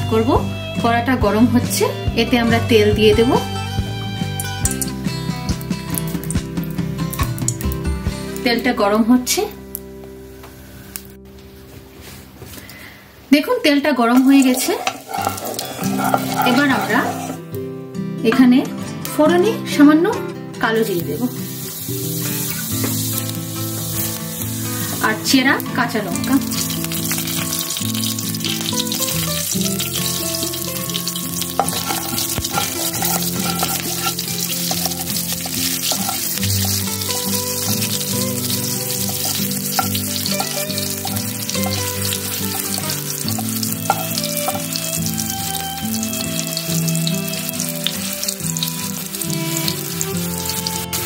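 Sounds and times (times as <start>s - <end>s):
chillies sizzling in hot oil: 0.0s - 11.2s, 14.0s - 17.4s, 20.6s - 51.0s.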